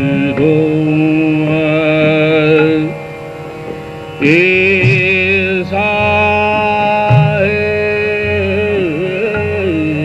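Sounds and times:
man singing long held note: 0.0 - 3.4, 4.2 - 10.0
tanpura drone: 0.0 - 10.0.

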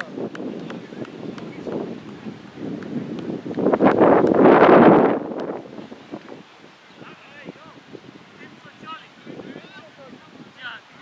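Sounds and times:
wind buffeting microphone: 0.0 - 11.0.

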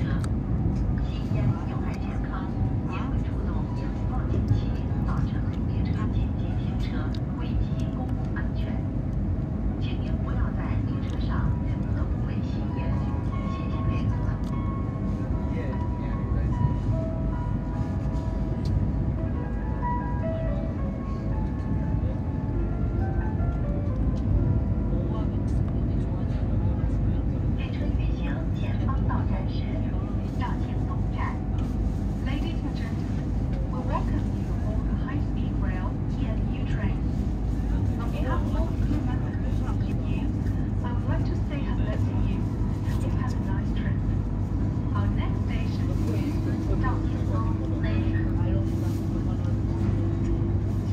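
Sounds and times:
train cabin rumble: 0.0 - 50.9.

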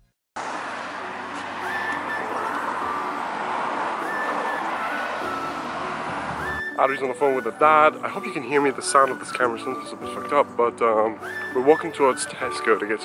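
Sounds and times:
passing car noise: 0.4 - 10.4.

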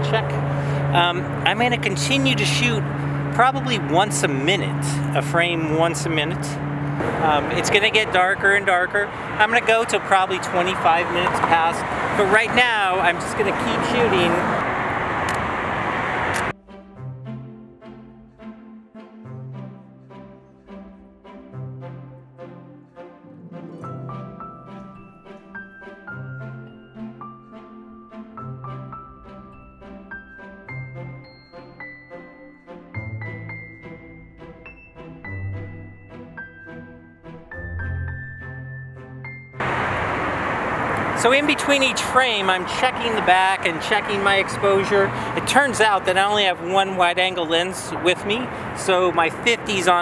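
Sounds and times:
road traffic: 0.0 - 50.0
music with long held notes: 16.5 - 40.0.

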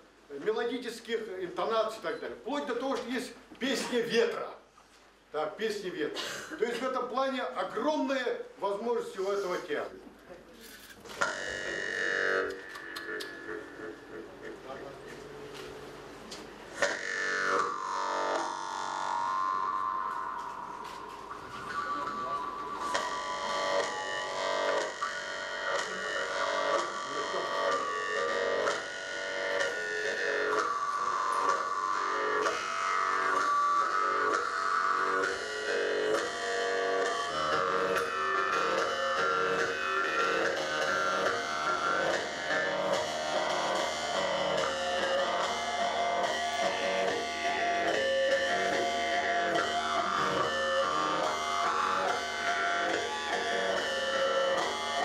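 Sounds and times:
jaw harps twanging: 11.1 - 14.6, 16.7 - 55.0.

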